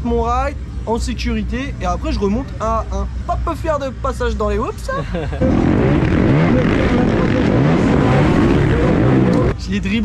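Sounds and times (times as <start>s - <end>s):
motocross bikes revving: 5.4s - 9.5s.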